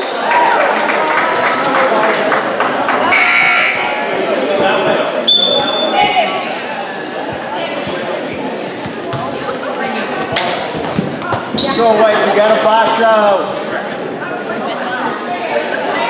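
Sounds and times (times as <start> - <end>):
murmur of crowd voices: 0.0 - 16.0
sneakers squeaking: 5.2 - 12.2, 13.4 - 14.2.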